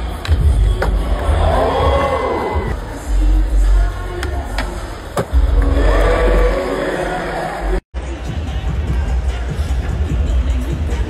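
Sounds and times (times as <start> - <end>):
arena music with heavy bass beat: 0.0 - 11.0
crowd cheering: 1.0 - 2.8, 5.6 - 7.8.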